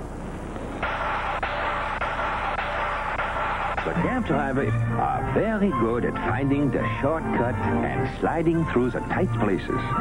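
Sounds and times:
cartoon crash and clatter: 0:00.8 - 0:04.7.

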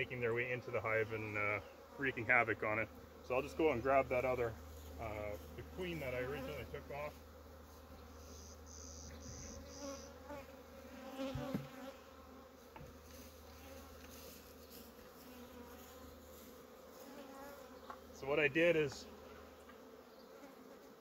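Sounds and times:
bee buzzing past close: 0:00.0 - 0:21.0
faint hum of many bees: 0:00.0 - 0:21.0
soft knock: 0:11.3 - 0:11.7.

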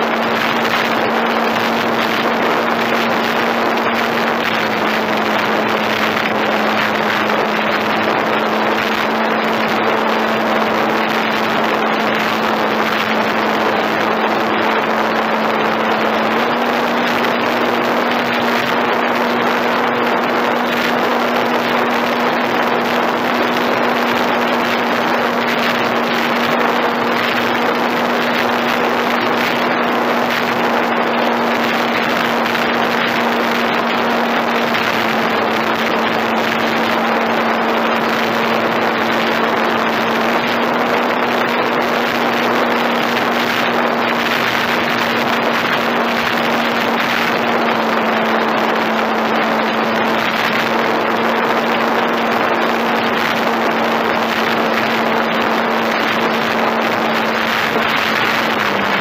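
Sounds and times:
loud rushing wind noise: 0:00.0 - 0:59.0
model airplane motor humming: 0:00.0 - 0:59.0.

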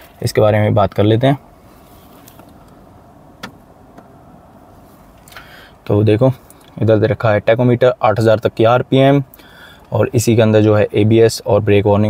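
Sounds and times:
car cabin hum: 0:00.0 - 0:09.1.

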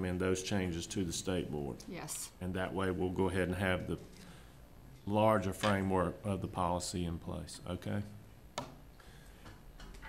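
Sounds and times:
low room noise: 0:00.0 - 0:10.0.

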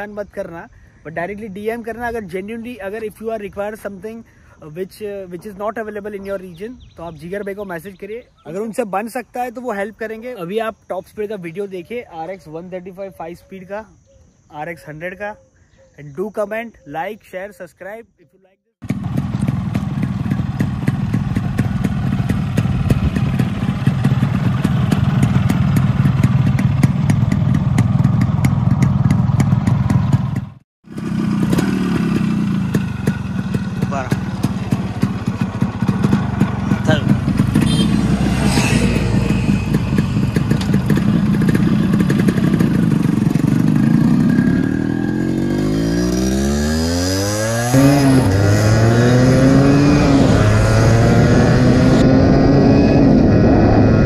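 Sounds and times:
motorcycle engine idling: 0:18.8 - 0:46.0
motorcycle revving and pulling away: 0:18.8 - 0:54.0.

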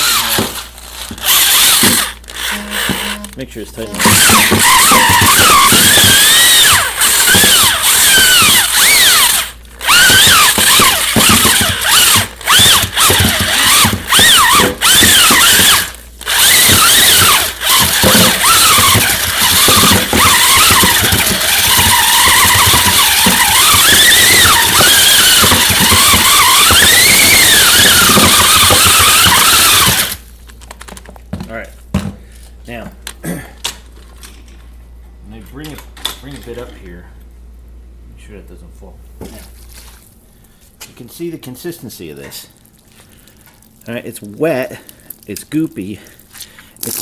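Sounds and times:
electric drill motor whining: 0:00.0 - 0:03.4, 0:04.0 - 0:30.2
mixer churning wet mulch: 0:03.8 - 0:30.2.

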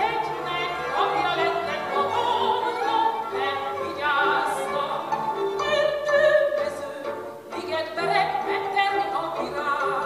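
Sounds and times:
string band playing: 0:00.0 - 0:10.0.

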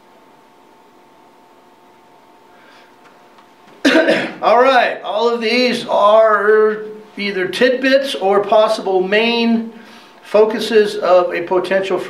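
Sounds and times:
man clearing throat: 0:03.8 - 0:04.5
man speaking: 0:04.4 - 0:12.0.

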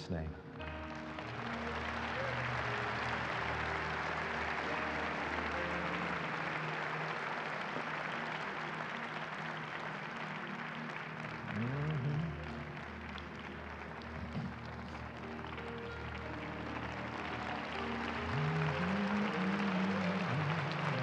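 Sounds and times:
congregation applause: 0:00.0 - 0:21.0
slow music of sustained chords: 0:00.0 - 0:21.0.

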